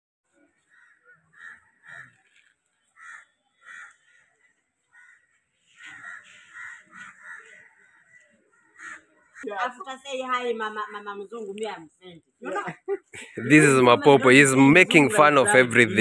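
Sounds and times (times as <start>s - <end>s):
crows cawing: 0.6s - 9.5s.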